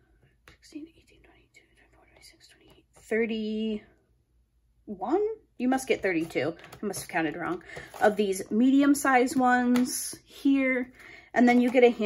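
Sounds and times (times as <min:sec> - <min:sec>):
woman whispering: 0:00.5 - 0:03.9.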